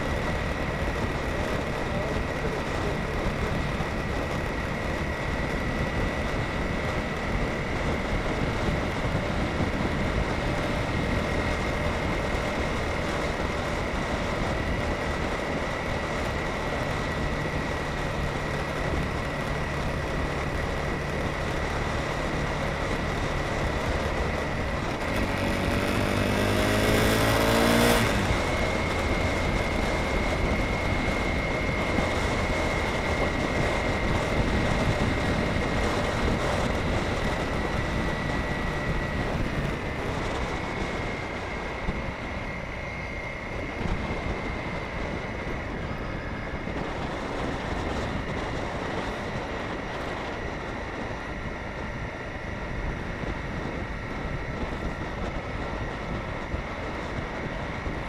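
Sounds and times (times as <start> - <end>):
motorcycle engine running: 0.0 - 58.0
road and wind noise: 0.0 - 58.0
steady high whine: 0.0 - 58.0.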